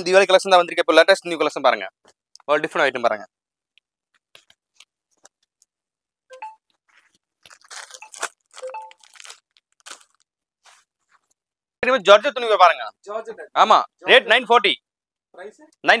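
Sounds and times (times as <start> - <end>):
fabric rustling and crinkling: 6.8 - 11.4.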